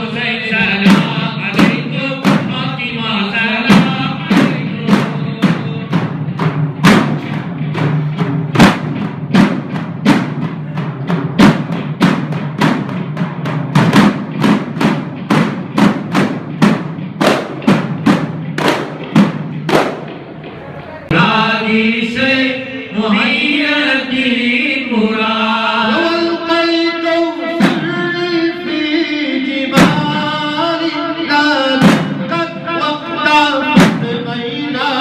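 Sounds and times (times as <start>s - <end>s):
frame drums beating: 0.0s - 22.5s, 23.1s - 35.0s.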